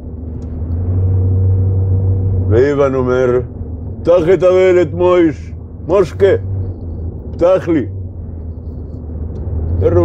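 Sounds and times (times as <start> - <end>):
steady low drone: 0.0 - 10.0.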